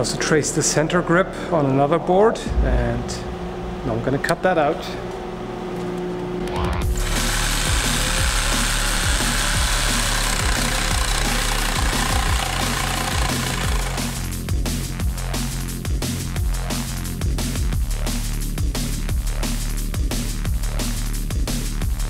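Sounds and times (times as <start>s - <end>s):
jigsaw cutting wood: 6.8s - 14.3s.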